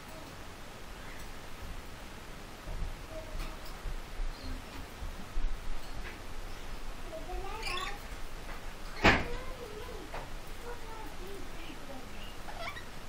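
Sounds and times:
parrot calls and chirps: 7.4s - 8.2s, 12.2s - 13.0s.

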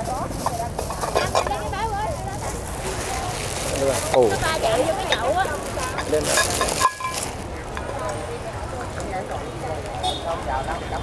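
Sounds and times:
plastic bag and newspaper crinkling: 0.0s - 10.5s
faint voices: 0.0s - 11.0s.

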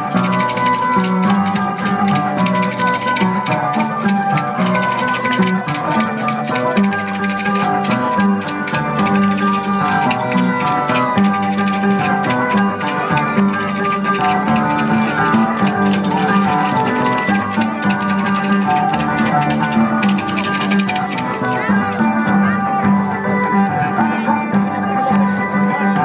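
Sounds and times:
folk dance music: 0.0s - 26.0s.

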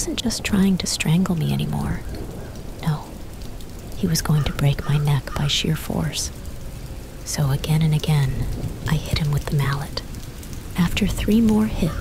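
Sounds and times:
steady rain hiss: 0.0s - 12.0s.

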